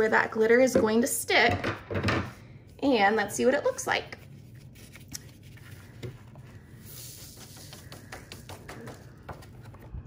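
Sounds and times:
paper handling: 4.4s - 9.9s
glitter sliding on paper: 4.5s - 9.0s.

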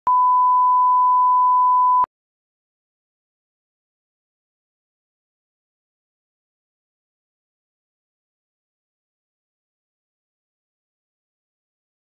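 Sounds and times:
high-pitched test tone beep: 0.1s - 2.1s.

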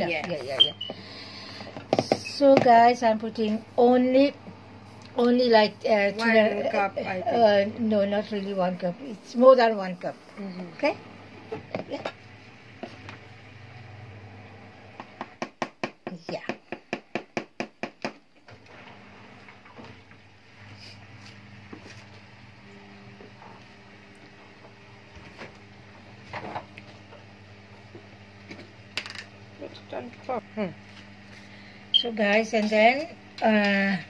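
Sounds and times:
low steady hum: 18.5s - 34.0s.

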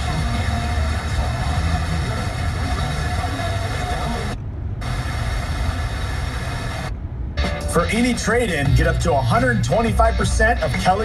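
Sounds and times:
radio static and hiss: 0.0s - 7.0s
low rumble: 0.0s - 10.2s
faint radio program audio: 0.0s - 11.0s.

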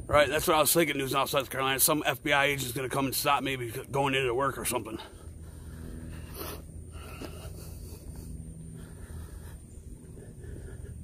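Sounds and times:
low steady hum: 0.0s - 11.0s
person breathing into microphone: 5.0s - 11.0s.

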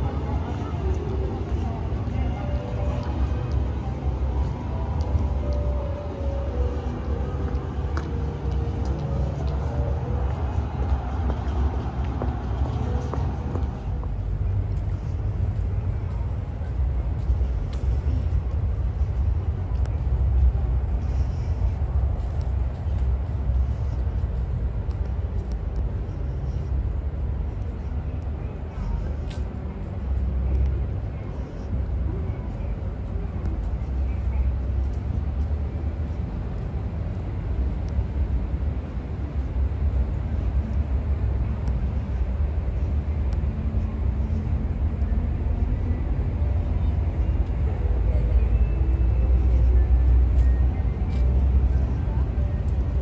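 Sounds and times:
distant voices: 0.0s - 53.0s
low city rumble: 0.0s - 53.0s.

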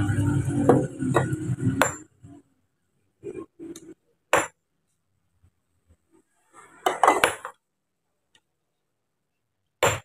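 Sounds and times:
sledgehammer striking stone: 4.3s - 4.6s, 9.8s - 10.0s.

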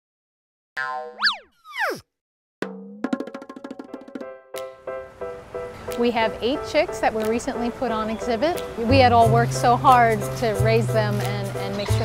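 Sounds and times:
cartoon boing glide: 0.8s - 2.0s
falling pitch glide: 1.0s - 2.0s.

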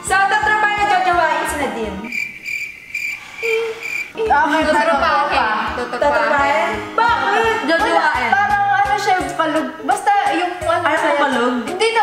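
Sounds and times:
cricket chirps: 2.0s - 4.2s.

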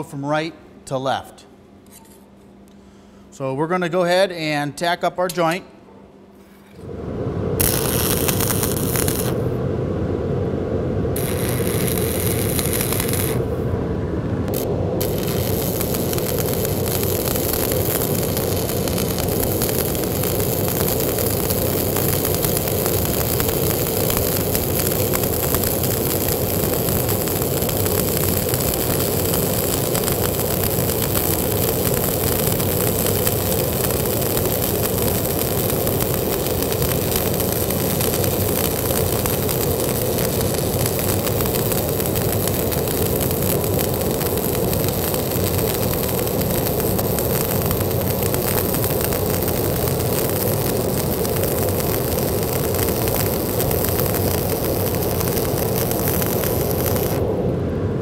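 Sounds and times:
welding arc crackling: 7.6s - 9.6s, 11.1s - 13.7s, 14.5s - 57.5s.

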